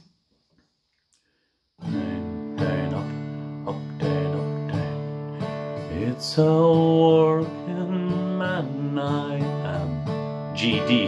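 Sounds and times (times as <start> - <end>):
acoustic guitar strummed slowly: 1.8 - 11.0.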